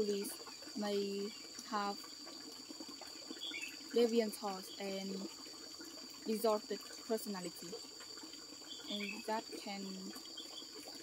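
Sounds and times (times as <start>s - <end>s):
faint chirp: 3.3s - 3.9s, 8.6s - 10.7s.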